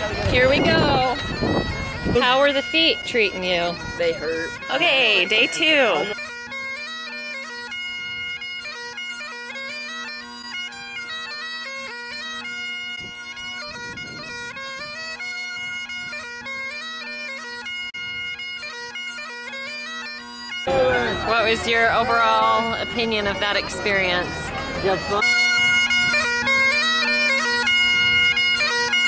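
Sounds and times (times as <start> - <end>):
bagpipes playing melody: 0.0 - 29.0.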